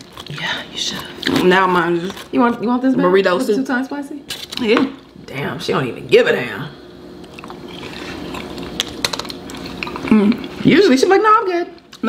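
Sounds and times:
wet chewing: 7.2s - 10.6s.

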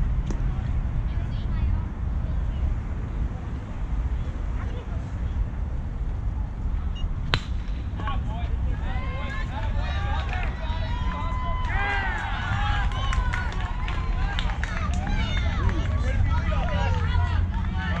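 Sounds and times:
steady low rumble: 0.0s - 18.0s
baseball bat hitting ball: 7.3s - 8.2s
people shouting and cheering: 8.0s - 18.0s.

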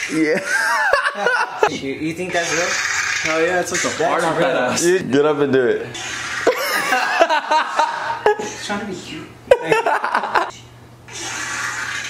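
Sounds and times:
person laughing: 0.2s - 1.7s, 6.4s - 8.6s, 9.5s - 10.5s.

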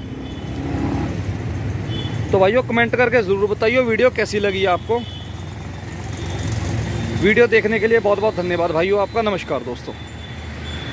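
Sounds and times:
motor vehicle engine rumbling: 0.0s - 10.9s.

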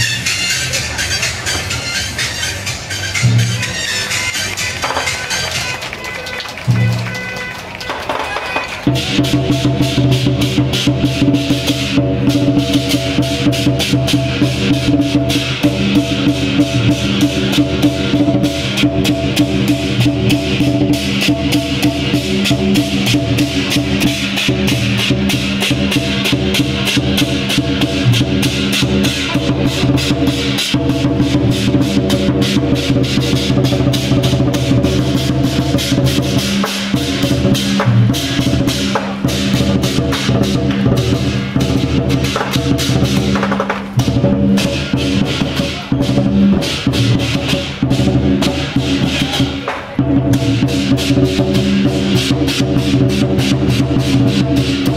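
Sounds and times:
big drum beating fast: 6.6s - 54.9s
crashing cymbals: 8.1s - 54.9s.

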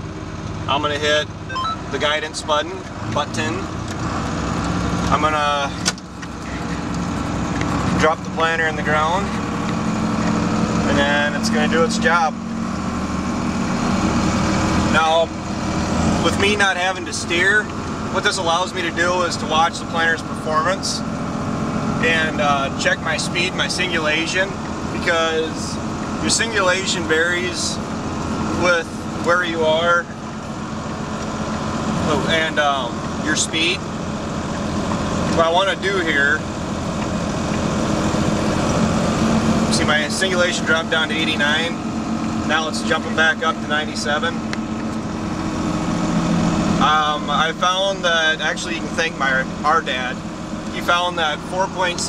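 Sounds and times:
tractor engine running under load: 0.0s - 52.0s.

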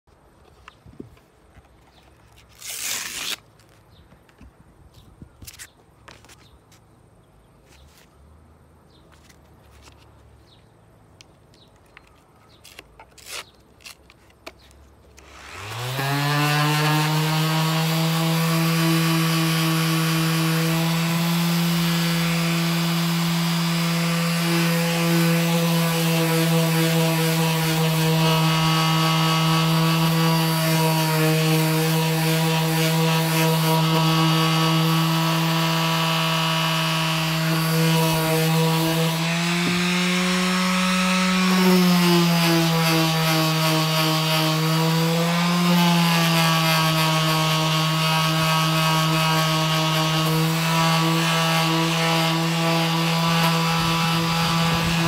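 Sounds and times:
orbital sander on wood: 15.2s - 55.0s.

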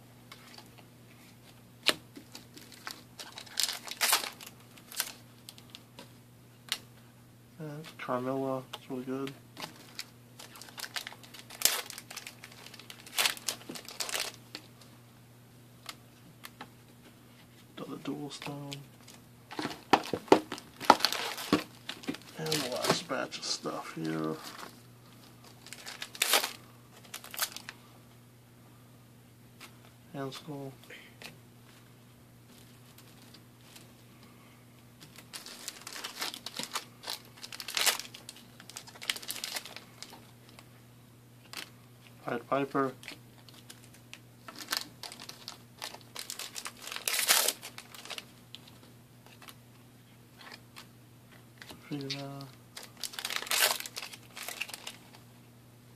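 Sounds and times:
foil wrapper tearing and crinkling: 1.8s - 5.8s, 9.6s - 14.6s, 19.5s - 23.0s, 25.5s - 27.7s, 35.1s - 40.6s, 43.0s - 49.6s, 52.8s - 55.2s
trading cards rustling: 2.2s - 5.8s, 9.6s - 14.7s, 18.3s - 27.8s, 35.1s - 40.2s, 43.0s - 49.6s, 51.6s - 55.2s.

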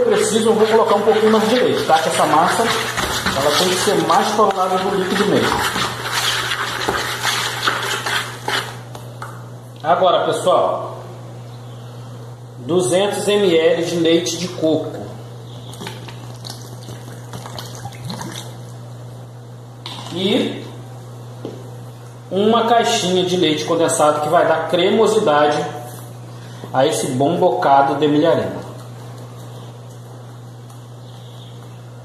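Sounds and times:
low electrical hum: 0.0s - 32.0s.

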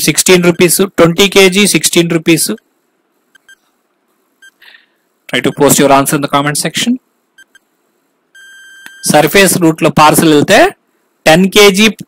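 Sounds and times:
timer beeps: 3.3s - 3.6s, 7.4s - 7.6s, 8.4s - 9.2s.

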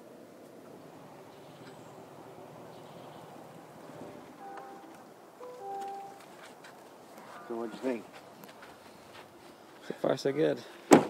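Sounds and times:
vehicle cabin noise: 0.5s - 9.7s
short steady tones: 4.0s - 6.2s.

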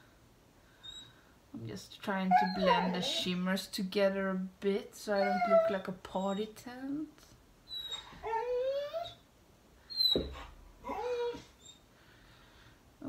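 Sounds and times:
dog whining: 2.3s - 3.4s, 5.1s - 6.0s, 7.7s - 9.2s, 9.9s - 11.9s.

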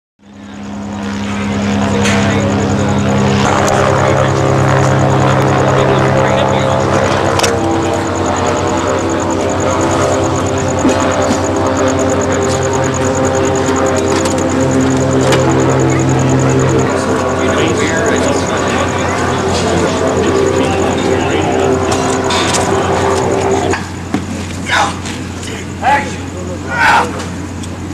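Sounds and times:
aircraft engine drone: 0.2s - 27.9s.

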